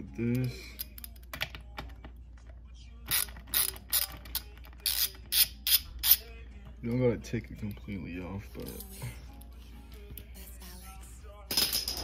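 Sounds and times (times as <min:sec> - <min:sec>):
socket ratchet clicking: 0:03.1 - 0:06.2.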